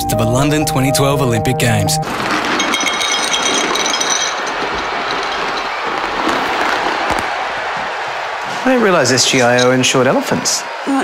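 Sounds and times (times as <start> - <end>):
dry kibble rattling into bowl: 2.1 - 6.9
ceramic bowl clink: 2.3 - 5.8.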